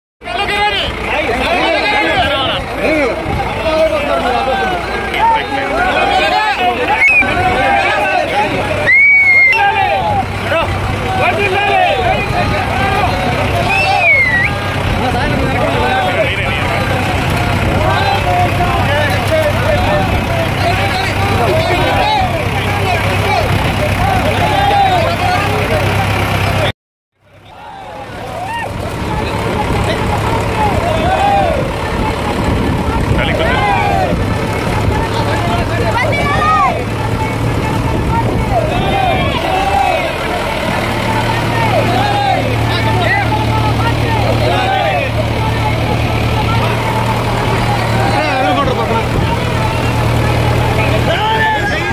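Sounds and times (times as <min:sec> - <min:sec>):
crowd voices calling out: 0:00.2 - 0:51.9
tractor diesel engine running: 0:00.2 - 0:51.9.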